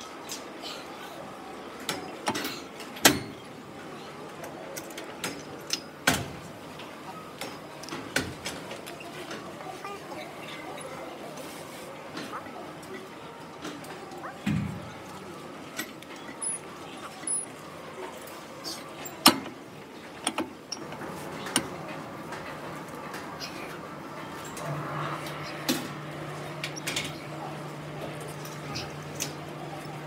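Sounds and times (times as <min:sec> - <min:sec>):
faint background voices: 0:00.0 - 0:30.0.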